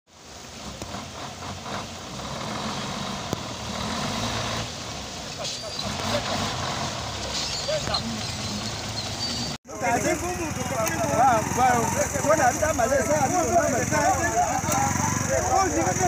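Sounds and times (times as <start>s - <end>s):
diesel truck engine rumble: 0.1s - 16.0s.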